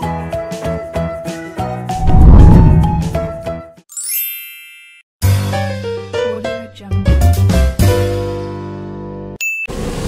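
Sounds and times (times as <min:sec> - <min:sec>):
upbeat intro music: 0:02.0 - 0:03.6.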